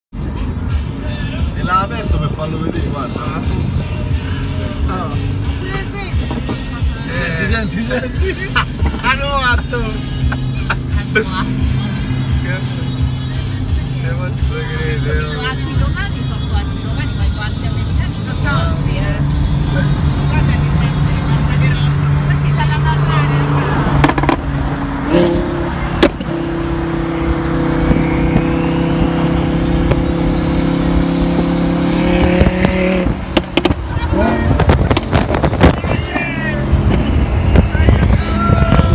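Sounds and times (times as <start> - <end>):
car engine droning at speed: 0.2 - 38.9
voices or singing: 0.7 - 23.6.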